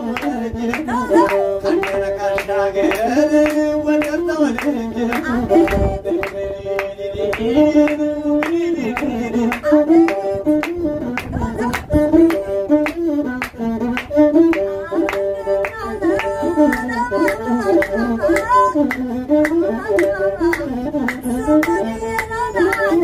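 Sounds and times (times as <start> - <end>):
bowed one-string fiddle: 0.0 - 23.0
person singing: 0.0 - 23.0
hand claps: 0.1 - 23.0.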